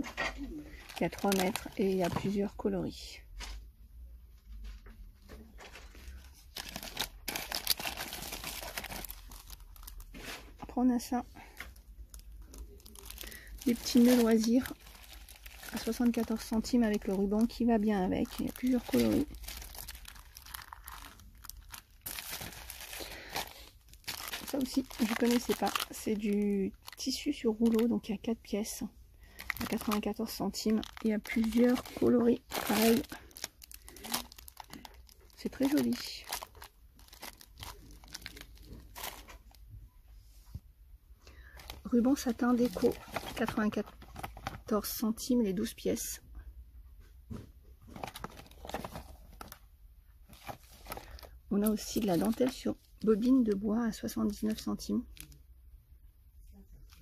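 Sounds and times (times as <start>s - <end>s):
packaging rustling and crinkling: 0.0s - 2.6s, 5.2s - 10.7s, 11.4s - 28.2s, 29.3s - 39.6s, 41.5s - 44.9s, 47.8s - 49.6s, 50.2s - 53.6s.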